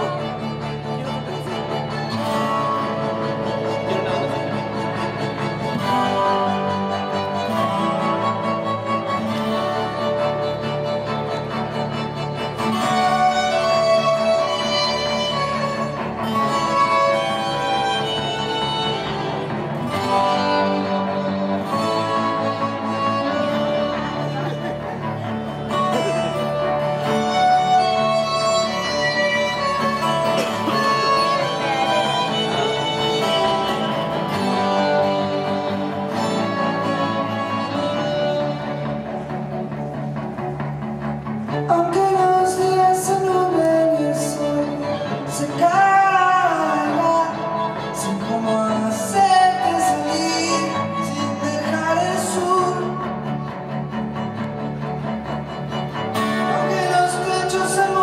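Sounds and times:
acoustic instrumental music: 0:00.0 - 0:58.0
plucked guitar: 0:00.0 - 0:58.0
violins bowing: 0:00.0 - 0:58.0.

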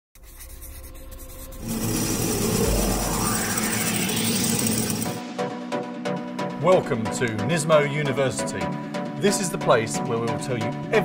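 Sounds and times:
pencil sketching: 0:00.2 - 0:02.6
swelling whoosh with rising sweeps: 0:01.6 - 0:06.4.

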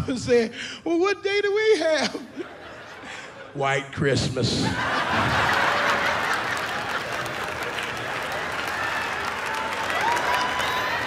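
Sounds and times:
audience laughing: 0:02.1 - 0:03.6, 0:04.5 - 0:08.4
audience applauding: 0:05.0 - 0:11.0.

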